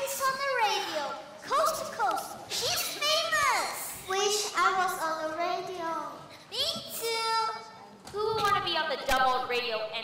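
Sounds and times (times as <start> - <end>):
children speaking and exclaiming: 0.0 - 8.8.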